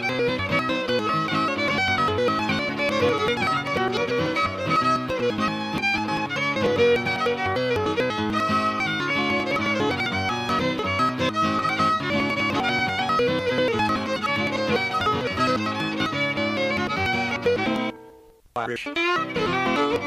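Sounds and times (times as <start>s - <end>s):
fiddle melody: 0.0s - 20.0s
strummed guitar: 0.0s - 20.0s.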